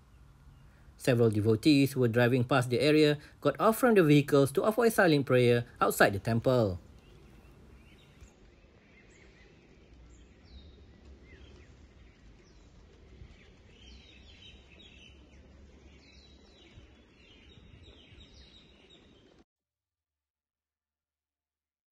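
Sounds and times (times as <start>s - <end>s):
low steady street rumble: 0.0s - 18.2s
bird chirps: 6.0s - 19.4s.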